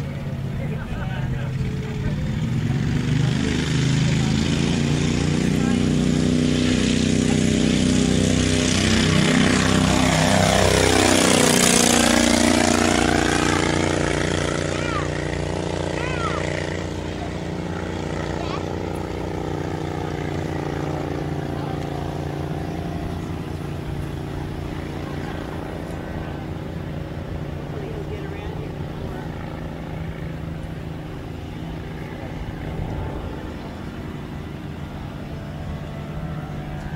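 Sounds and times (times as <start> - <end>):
ultralight plane engine passing: 0.0 - 36.9.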